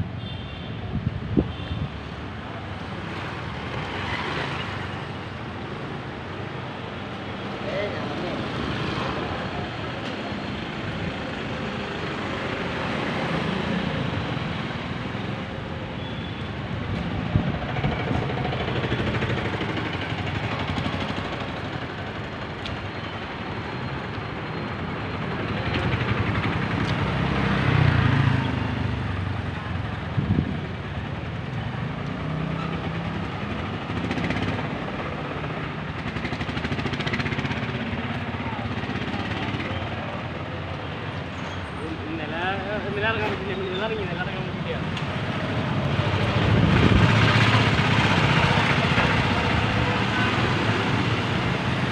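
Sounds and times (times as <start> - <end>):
vehicles passing at low speed: 23.5 - 51.9.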